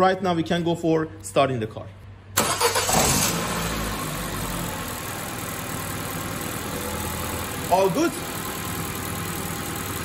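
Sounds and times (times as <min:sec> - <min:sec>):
car engine starting and idling: 0:02.3 - 0:10.0.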